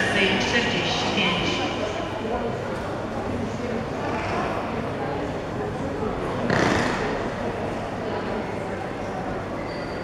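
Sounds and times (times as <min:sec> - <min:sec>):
station crowd hubbub: 0:00.0 - 0:10.0.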